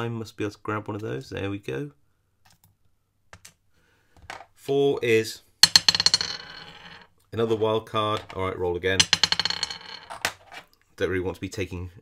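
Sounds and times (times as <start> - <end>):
die clattering on a desktop: 4.2 - 4.6, 5.6 - 10.7.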